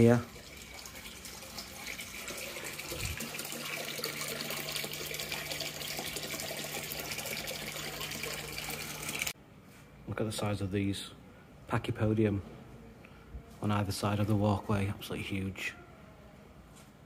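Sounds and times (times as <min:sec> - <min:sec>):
water pouring into pond: 0:00.0 - 0:09.4.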